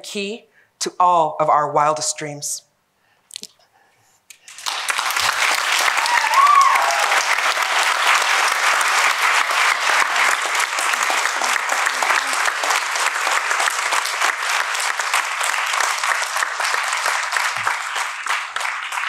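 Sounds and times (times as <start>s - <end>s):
audience applauding: 4.4s - 19.0s.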